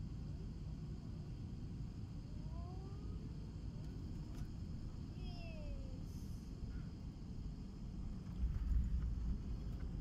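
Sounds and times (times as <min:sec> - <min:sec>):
airliner engines and wheels rumbling: 0:00.0 - 0:10.0.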